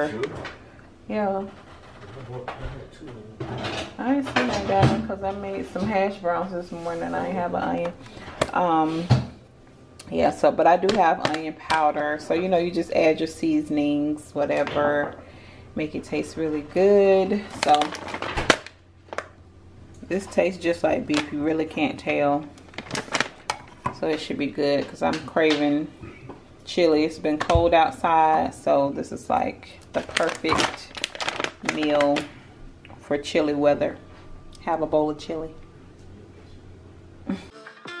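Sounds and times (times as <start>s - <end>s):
plastic bag rustling: 17.3s - 19.3s, 22.6s - 23.9s, 29.9s - 32.4s
plastic pouch crinkling: 17.5s - 19.3s, 22.6s - 23.8s, 29.9s - 32.4s.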